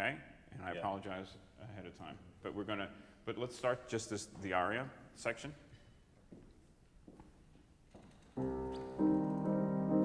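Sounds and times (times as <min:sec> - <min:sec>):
grand piano chord ringing: 0:08.4 - 0:10.0.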